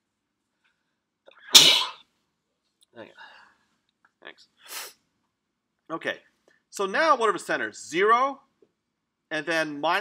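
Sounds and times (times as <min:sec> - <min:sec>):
person sneezing loudly: 0:01.5 - 0:02.0.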